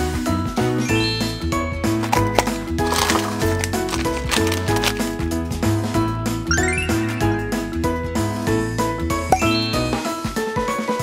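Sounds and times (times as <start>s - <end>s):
music with bell-like chimes: 0.3s - 1.8s, 6.5s - 11.0s.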